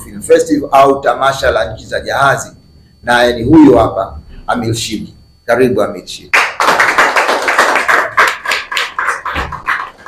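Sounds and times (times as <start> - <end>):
audience applause: 6.4 - 10.0.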